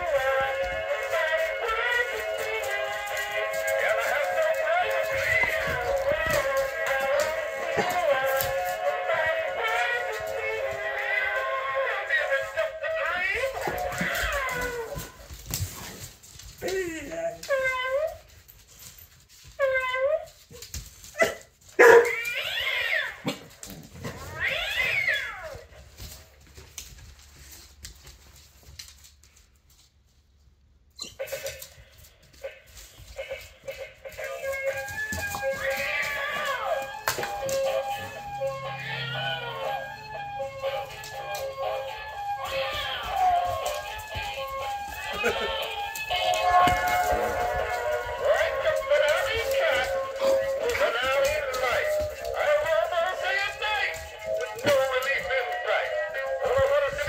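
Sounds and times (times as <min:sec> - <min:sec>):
toy cat meows: 0:22.0 - 0:23.2.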